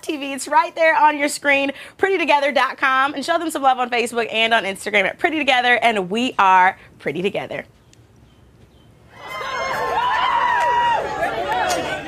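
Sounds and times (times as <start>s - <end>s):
crowd of overlapping voices: 9.1s - 12.0s.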